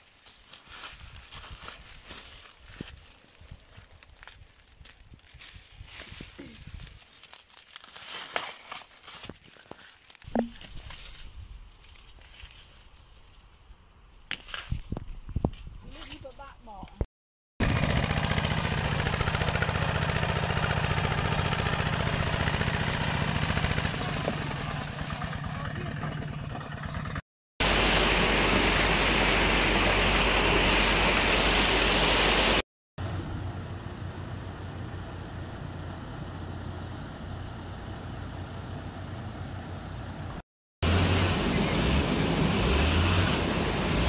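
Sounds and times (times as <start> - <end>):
diesel tractor engine running: 17.6 - 44.0
low hum: 25.1 - 38.3
loud rushing noise: 27.6 - 32.6.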